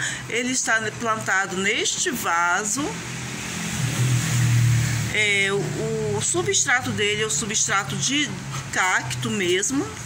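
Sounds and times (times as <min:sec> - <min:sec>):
low motor hum: 0:02.9 - 0:07.7.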